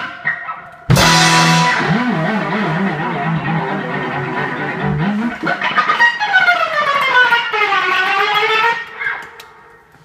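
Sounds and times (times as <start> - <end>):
electric guitar note sliding down: 0.9 - 9.0.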